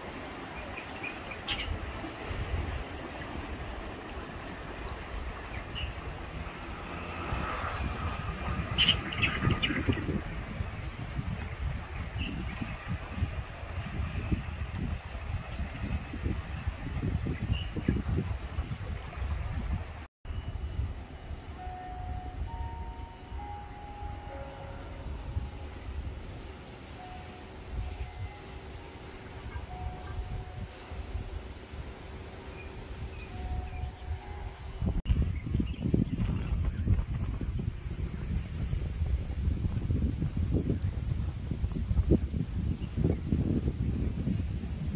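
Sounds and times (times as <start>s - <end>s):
wind rumbling on microphone: 0.0s - 44.9s.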